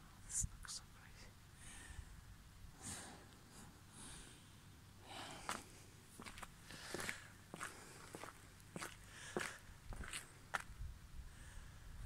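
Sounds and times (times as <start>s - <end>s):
faint footsteps: 5.3s - 10.8s.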